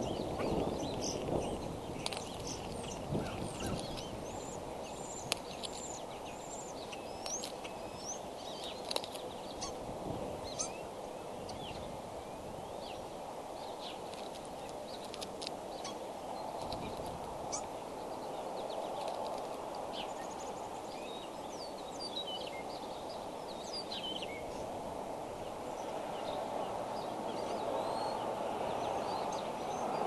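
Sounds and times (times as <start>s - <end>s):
birds chirping and whistling: 0.0s - 8.8s, 10.5s - 10.8s.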